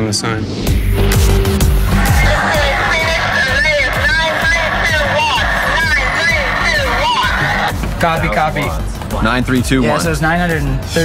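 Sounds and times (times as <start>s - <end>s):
music with steady beat: 0.7s - 11.0s
tinny voice over two-way radio: 2.1s - 7.7s.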